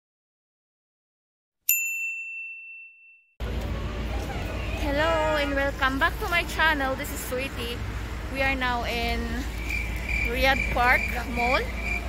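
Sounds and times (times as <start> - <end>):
bright chime ding: 1.7 - 3.2.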